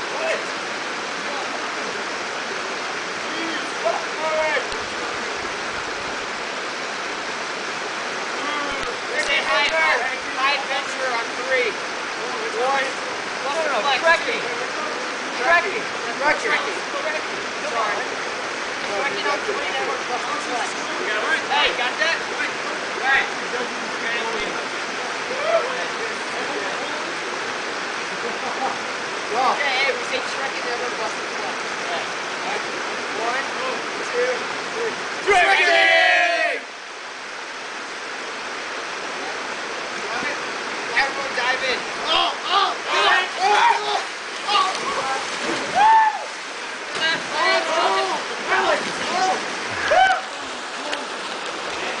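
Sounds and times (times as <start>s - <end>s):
river water rushing over rocks: 0.0s - 52.0s
people calling out: 42.0s - 46.4s, 47.0s - 51.0s
person shouting: 45.7s - 46.3s, 49.8s - 50.3s.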